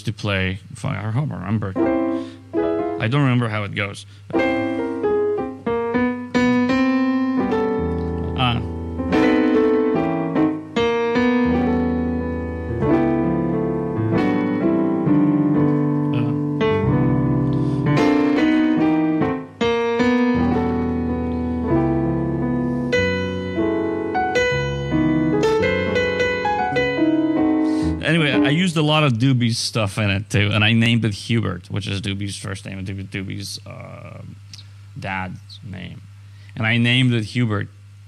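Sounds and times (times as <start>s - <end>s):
piano chords: 1.3s - 29.5s.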